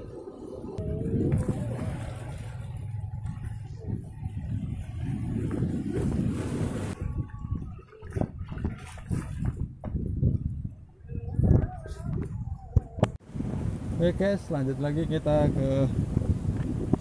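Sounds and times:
sea surf on rocky shore: 0.0s - 8.0s, 13.2s - 17.0s
wind buffeting microphone: 0.0s - 17.0s.

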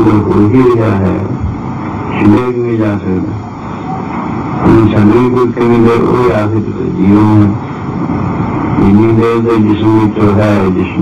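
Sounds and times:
man speaking: 0.0s - 1.4s, 2.1s - 3.4s, 4.6s - 7.6s, 8.8s - 11.0s
videotape hiss and whine: 0.0s - 11.0s.

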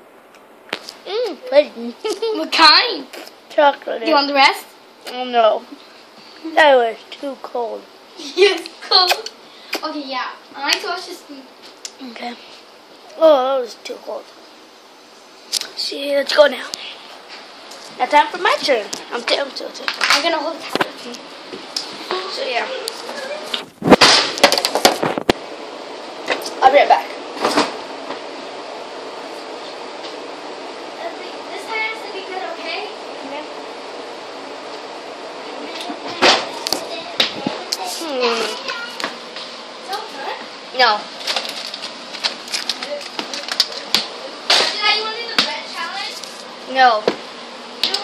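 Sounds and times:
child's voice: 1.0s - 5.8s, 6.4s - 12.4s, 13.1s - 14.3s, 15.7s - 16.8s, 18.0s - 21.2s, 22.0s - 23.6s, 26.6s - 27.2s, 31.0s - 33.5s, 35.5s - 39.2s, 44.6s - 47.1s, 47.8s - 48.0s
microphone handling rush: 23.4s - 25.4s, 37.3s - 37.6s.

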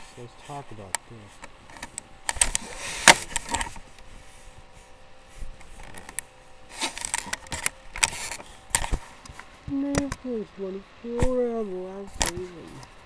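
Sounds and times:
rustling: 0.0s - 10.2s.

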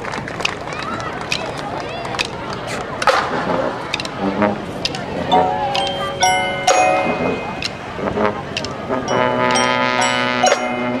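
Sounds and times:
percussion strikes: 3.0s - 11.0s
ringing mallet notes: 5.3s - 8.1s, 9.0s - 11.0s
brass sustained chord: 5.3s - 11.0s.

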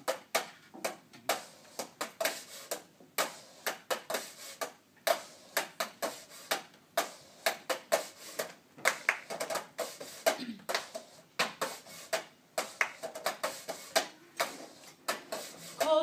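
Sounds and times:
rhythmic hand claps and taps: 0.0s - 16.0s.

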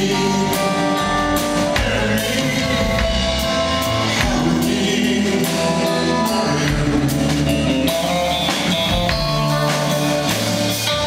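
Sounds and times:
bass guitar: 0.0s - 11.0s
drums with cymbals: 0.0s - 11.0s
electric guitar: 0.0s - 11.0s
person singing: 0.0s - 11.0s.

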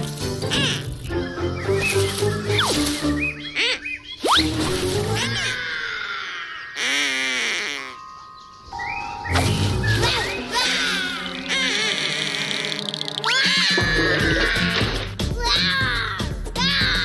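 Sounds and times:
playful cartoon music: 0.0s - 5.8s, 8.7s - 17.0s.

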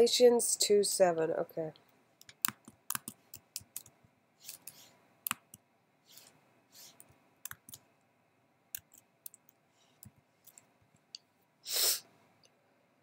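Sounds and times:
computer keyboard keystrokes: 2.2s - 5.6s, 7.0s - 7.8s, 8.8s - 10.6s
soft hisses: 6.1s - 7.2s, 11.6s - 12.2s.

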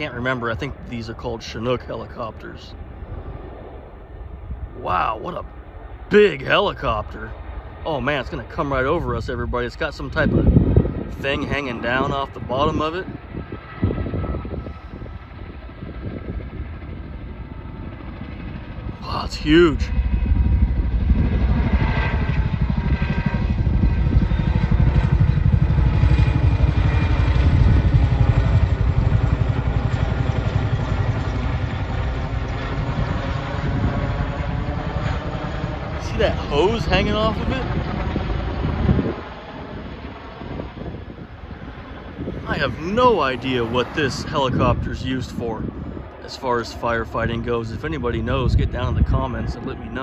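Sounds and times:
helicopter rotors chopping: 0.0s - 50.0s
wind buffeting microphone: 0.0s - 50.0s.

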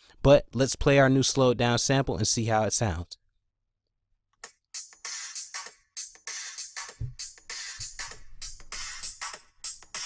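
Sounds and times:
drum loop: 4.8s - 10.0s.

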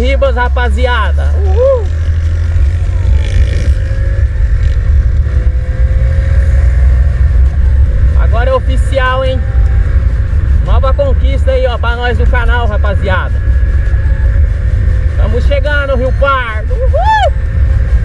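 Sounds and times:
motorcycle engine: 0.0s - 18.0s
wind rumble on microphone: 0.0s - 18.0s.

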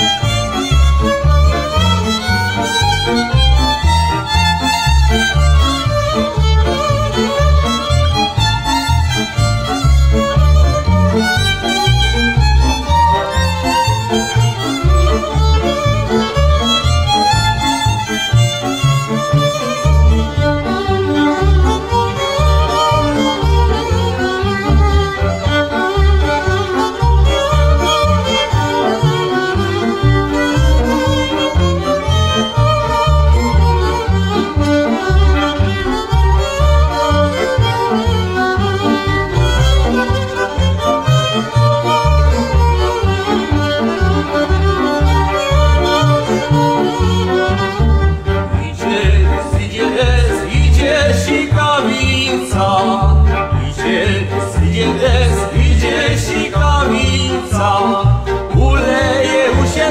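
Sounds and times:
bowed bass pulsing: 0.0s - 59.9s
fiddles playing a dance tune: 0.0s - 59.9s.

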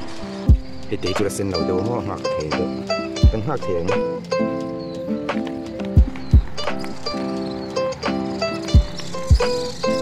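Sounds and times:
instrumental music with deep thumps: 0.0s - 10.0s.

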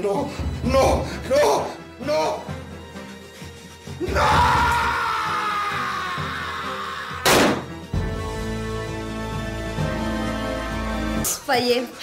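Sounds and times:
dramatic background music: 0.0s - 12.0s
handgun shot: 7.2s - 7.7s.

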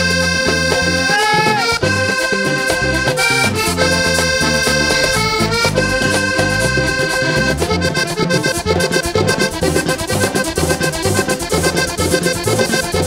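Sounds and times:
band playing with accordion: 0.0s - 13.0s
button accordion: 0.0s - 13.0s
low bass line: 1.7s - 13.0s.

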